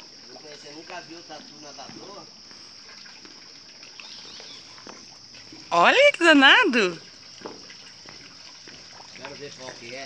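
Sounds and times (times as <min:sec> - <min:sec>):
animal paddling and splashing: 0:00.0 - 0:10.0
water lapping: 0:00.0 - 0:10.0.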